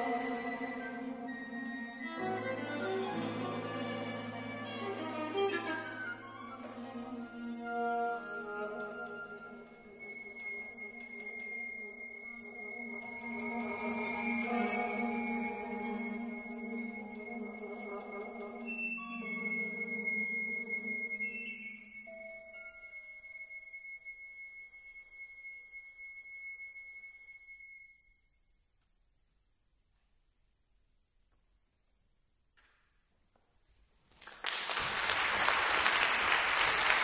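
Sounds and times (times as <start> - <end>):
solo violin long held notes: 0.0 - 27.9.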